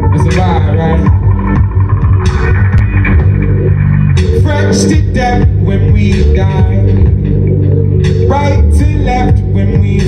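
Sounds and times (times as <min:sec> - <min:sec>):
deep electric bass line: 0:00.0 - 0:10.0
electronic backing: 0:00.0 - 0:10.0
live band music: 0:00.0 - 0:10.0.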